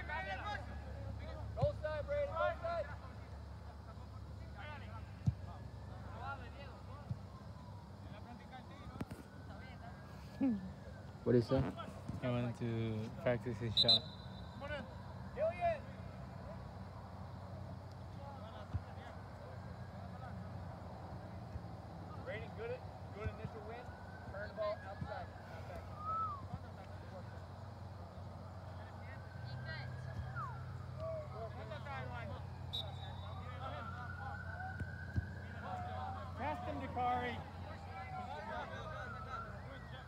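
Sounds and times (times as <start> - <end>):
players calling and shouting: 0.0 - 40.0.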